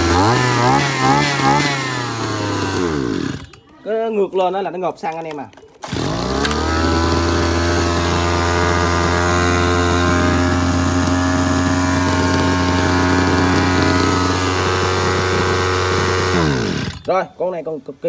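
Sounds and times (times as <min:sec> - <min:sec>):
two-stroke pump engine running: 0:00.0 - 0:03.6, 0:05.8 - 0:17.1.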